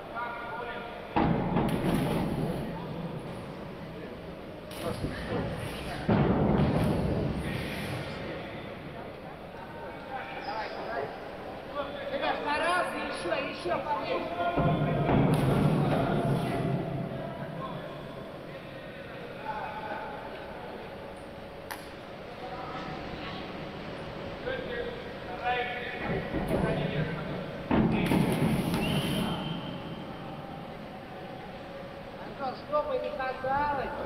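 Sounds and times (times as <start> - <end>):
voices in pool hall: 0.0 - 34.0.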